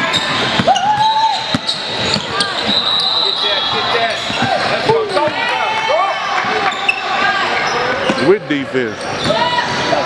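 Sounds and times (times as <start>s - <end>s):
shoe squeaks: 0.0s - 4.6s, 6.7s - 9.9s.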